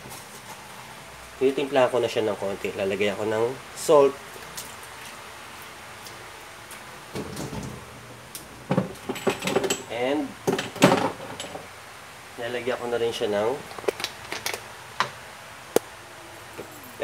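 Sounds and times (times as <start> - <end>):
kitchenware knocks and clicks: 8.7 - 9.9, 10.5 - 11.6.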